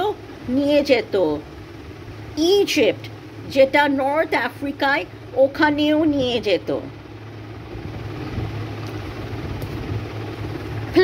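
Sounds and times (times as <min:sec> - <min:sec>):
low mechanical rumble with hum: 0:00.0 - 0:11.0.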